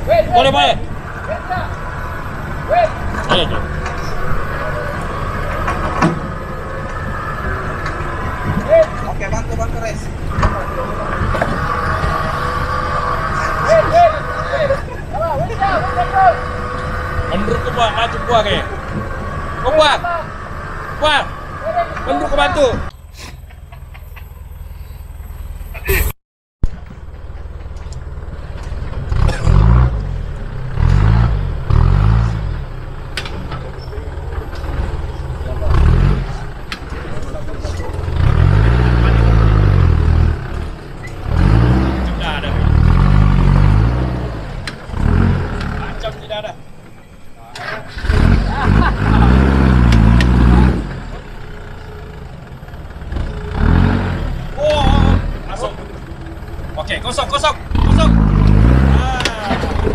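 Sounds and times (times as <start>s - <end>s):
off-road vehicle engine revving: 0.0s - 26.1s, 26.7s - 59.9s.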